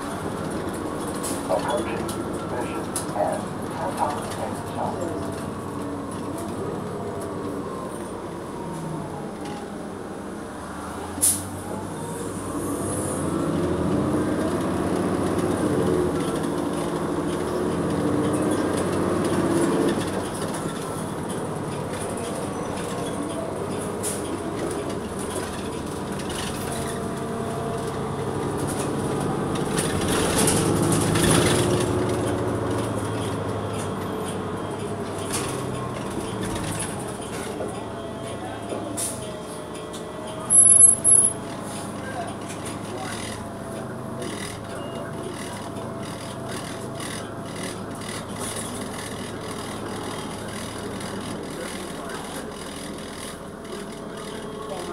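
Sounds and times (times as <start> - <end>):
bus engine running: 0.0 - 54.9.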